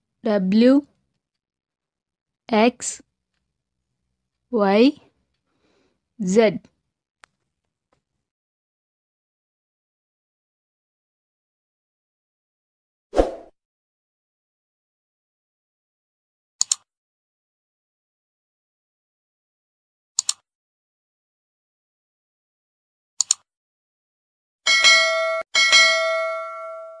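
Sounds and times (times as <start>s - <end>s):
notification bell ringing: 24.7s - 27.0s.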